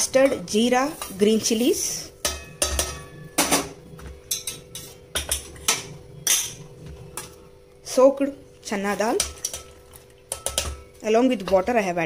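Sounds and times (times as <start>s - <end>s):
steel dishes clinking: 2.2s - 3.7s.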